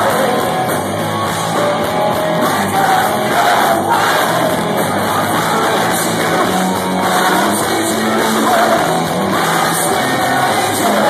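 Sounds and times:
rock band playing live: 0.0s - 11.0s
crowd shouting: 1.8s - 11.0s.

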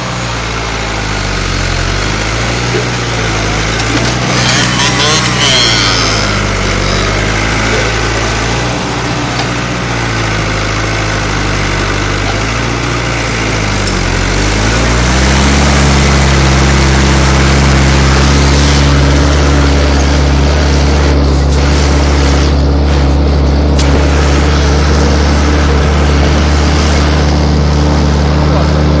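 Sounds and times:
tractor diesel engine working: 0.0s - 29.0s.

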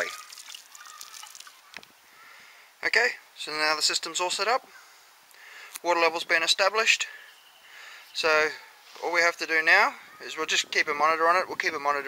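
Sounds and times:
water sprinkling onto pebbles: 0.0s - 2.0s.

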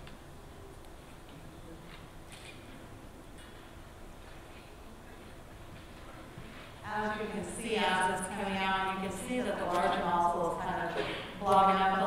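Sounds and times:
woman speaking: 6.8s - 12.0s.

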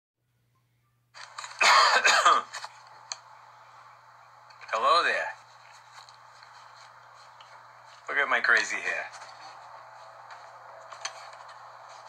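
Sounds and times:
faint steady hum: 0.2s - 12.0s
man coughing: 1.6s - 2.5s.

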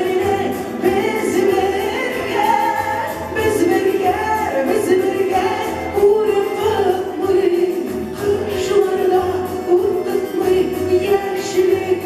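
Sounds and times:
woman singing into a microphone: 0.0s - 12.0s.

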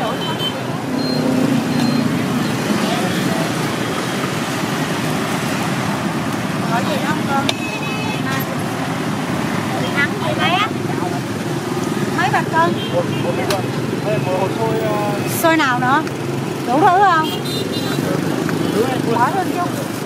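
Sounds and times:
road traffic noise: 0.0s - 20.0s
voices talking: 0.0s - 20.0s.

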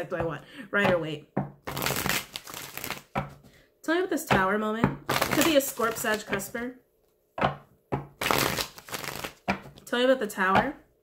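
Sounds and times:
cards being shuffled: 1.6s - 3.4s, 5.1s - 6.5s, 8.2s - 9.8s.

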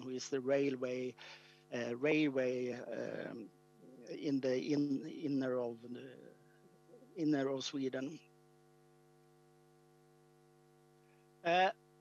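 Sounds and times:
man speaking: 0.0s - 6.4s, 7.0s - 8.2s, 11.5s - 11.7s
faint electrical hum: 0.0s - 12.0s.

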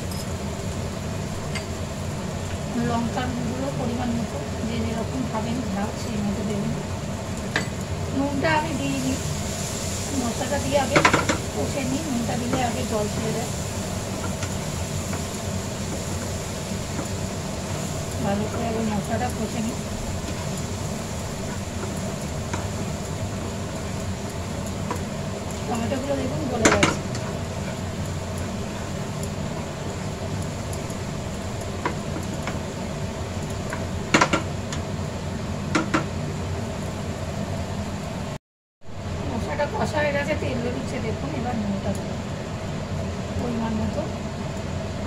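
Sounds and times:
low rumbling with hiss: 0.0s - 45.0s
steady background hum: 0.0s - 45.0s
spatula stirring food in a pan: 7.1s - 34.9s
spatula tapping frying pan: 7.4s - 7.8s, 10.8s - 11.5s, 14.1s - 17.3s, 26.6s - 29.4s, 31.6s - 32.7s, 33.4s - 34.8s, 35.7s - 36.1s
spatula knocking against pan: 35.7s - 36.1s.

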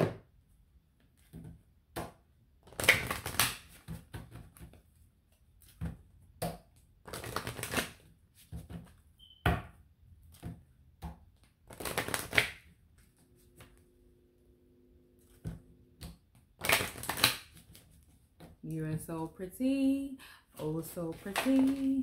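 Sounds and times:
taps and flicks of cards: 1.2s - 4.8s, 5.6s - 8.9s, 10.4s - 12.7s, 15.4s - 17.8s.

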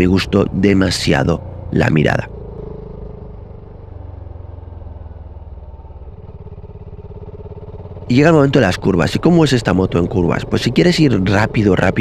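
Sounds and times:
motorcycle engine running: 0.0s - 12.0s.

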